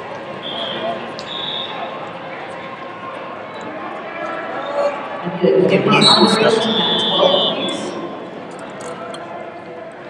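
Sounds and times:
indistinct voices in echoing hall: 0.0s - 10.0s
steady high tone: 5.3s - 9.0s.

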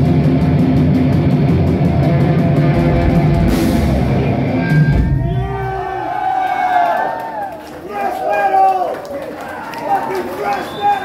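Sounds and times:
metal band playing live: 0.0s - 6.0s
cymbal crash: 2.1s - 5.2s
long held shout: 5.1s - 11.0s.

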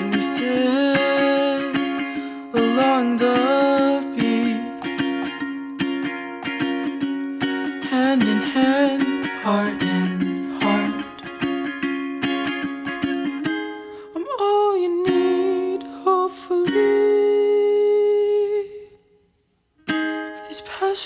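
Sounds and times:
ukulele strumming: 0.0s - 19.0s, 19.8s - 21.0s.

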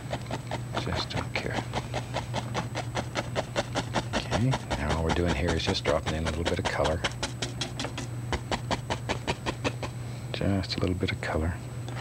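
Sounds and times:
brush tapping on canvas: 0.0s - 10.0s.

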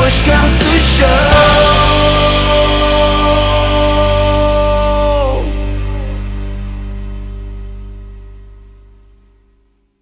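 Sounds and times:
cymbals washing: 0.0s - 8.0s
rock band sustained chord: 0.0s - 9.7s.

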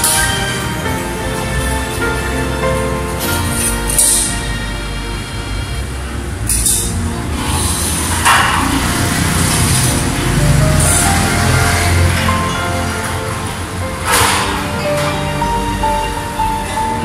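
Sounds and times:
low bass line: 0.0s - 17.0s
slow melody of held notes: 0.0s - 17.0s.

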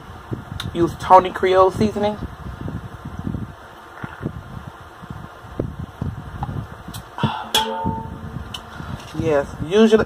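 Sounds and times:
short steady hum: 7.2s - 9.1s.

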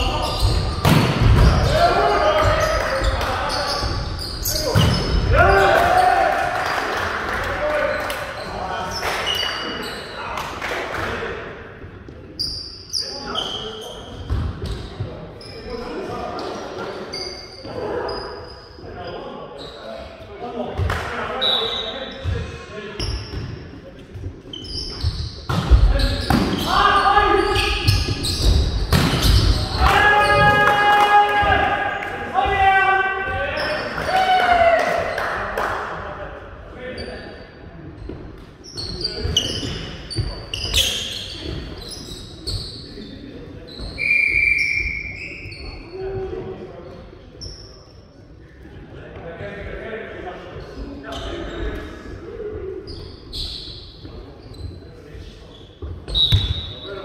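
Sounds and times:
volleyball hits and bounces: 0.5s - 1.8s, 28.4s - 29.7s
players shouting: 1.4s - 3.8s, 4.5s - 8.0s, 29.5s - 35.2s.

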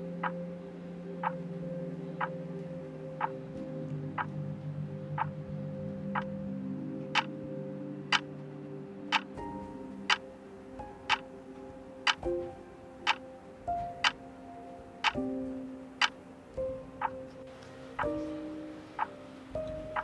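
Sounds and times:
slow music of held notes: 0.0s - 20.0s
clock ticking: 11.0s - 11.2s, 12.0s - 12.4s, 14.0s - 14.2s, 15.0s - 15.2s, 19.7s - 20.0s.

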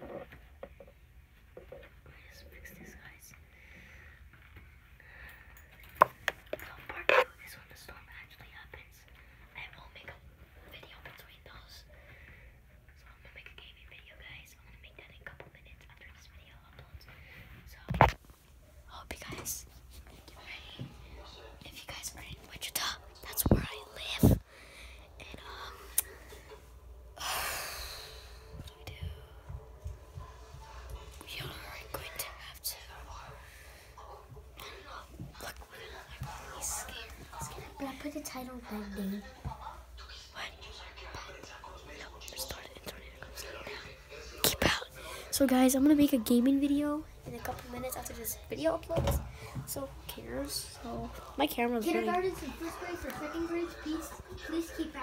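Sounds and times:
low whispered voices: 1.9s - 4.1s, 6.5s - 55.0s.

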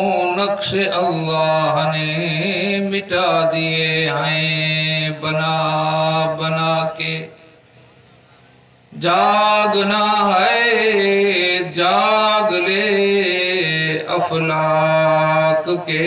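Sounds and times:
man chanting devotional verse: 0.0s - 7.6s, 8.9s - 16.0s.

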